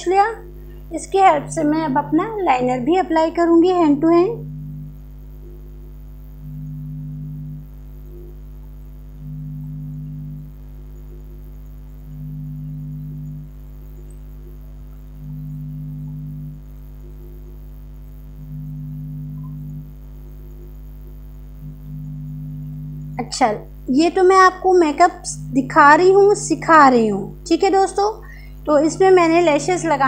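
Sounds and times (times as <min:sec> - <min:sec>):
faint low hum: 0:00.0 - 0:30.0
low droning music: 0:00.0 - 0:30.0.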